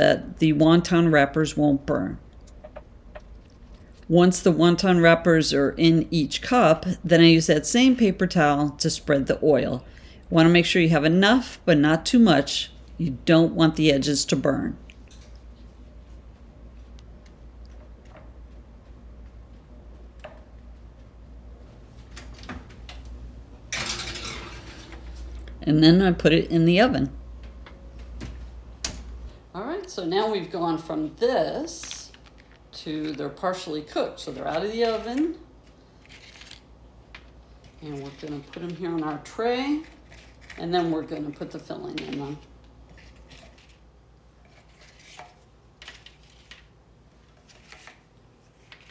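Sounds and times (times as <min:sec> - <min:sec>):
oven rushing noise with low hum: 0:00.0 - 0:48.9
baking sheet sliding onto rack: 0:23.7 - 0:25.1.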